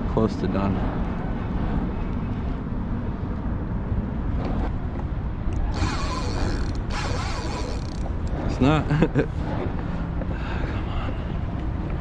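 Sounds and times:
fishing reel ratcheting: 5.6s - 8.1s.

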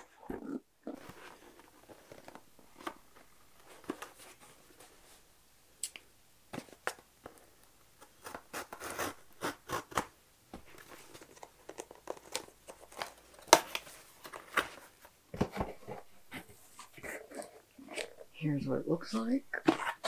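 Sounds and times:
cardboard scraping and rustling: 1.0s - 5.2s.

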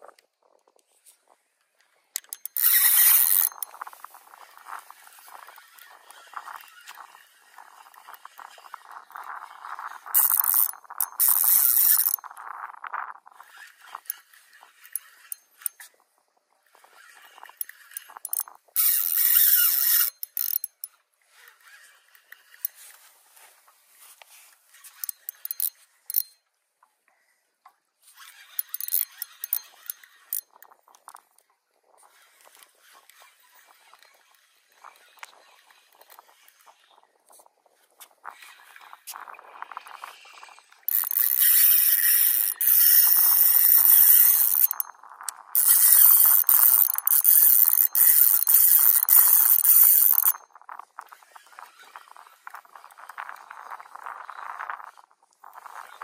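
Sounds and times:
fishing reel whirring: 2.2s - 16.0s, 16.6s - 23.0s, 24.6s - 26.4s, 28.0s - 31.3s, 37.6s - 56.0s.

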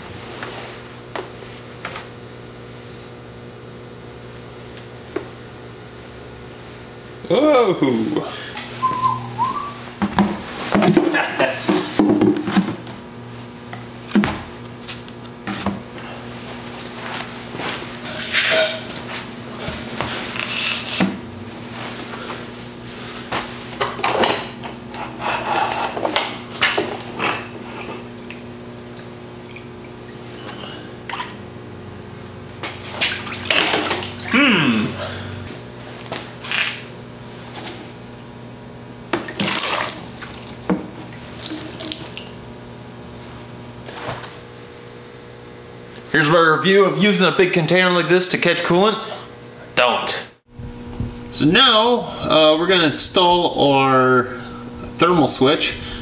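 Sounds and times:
steady low hum: 0.0s - 56.0s
plastic tub knocks and scrapes: 10.0s - 12.8s
liquid sloshing: 39.2s - 42.4s.

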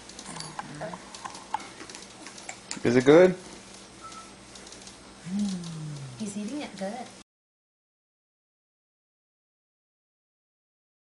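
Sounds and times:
person speaking: 5.2s - 7.2s.

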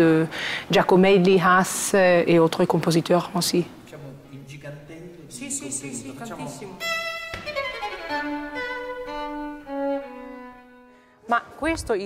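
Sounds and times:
man speaking: 3.9s - 6.9s
string ensemble playing: 6.1s - 11.1s.

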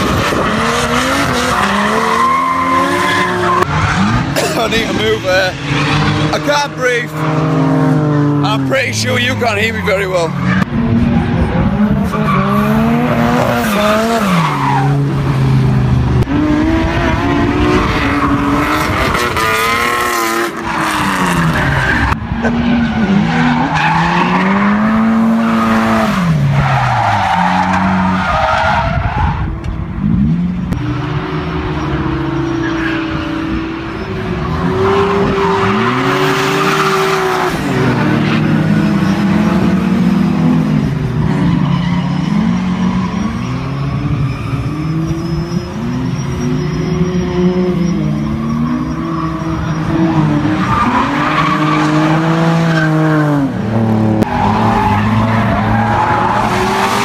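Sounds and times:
car engines revving hard: 0.0s - 57.0s.

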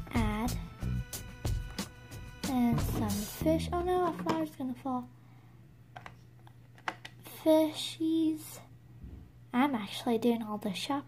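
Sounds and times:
low steady hum: 2.5s - 11.0s.

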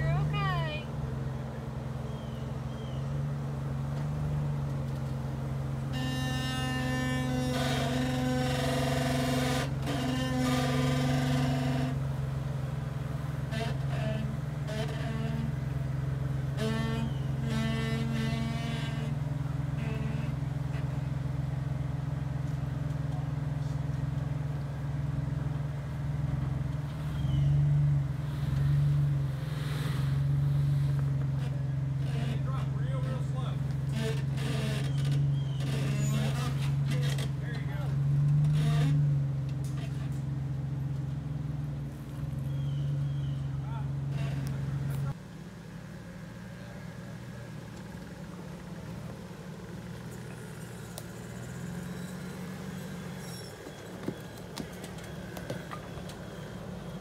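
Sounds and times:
car engine running low: 0.0s - 57.0s.

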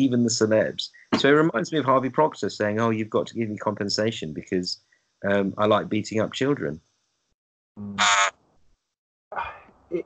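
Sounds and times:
man speaking: 0.0s - 6.8s, 7.8s - 8.0s
man's short high vocal burst: 7.8s - 8.0s.

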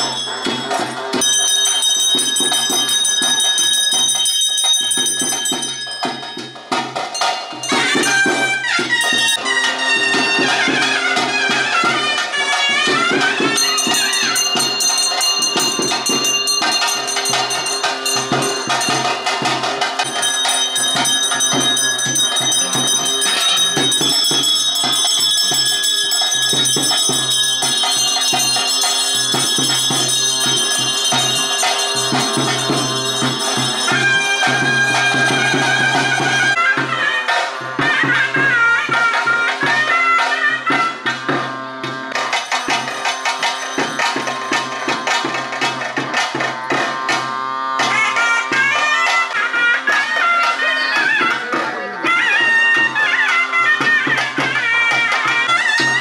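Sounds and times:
hand bell ringing: 0.0s - 36.7s, 42.2s - 51.4s, 52.0s - 56.0s
ritual music with drumbeats: 0.0s - 56.0s.

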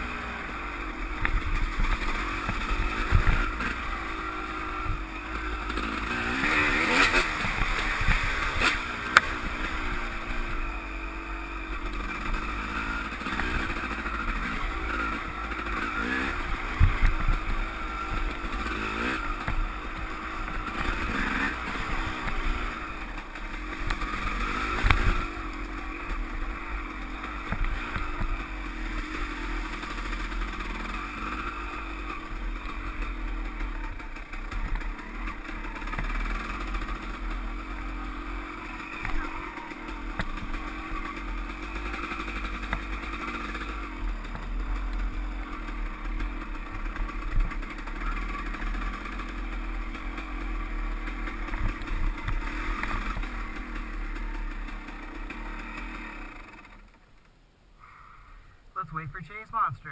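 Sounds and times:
dirt bike engine running: 0.0s - 59.9s.

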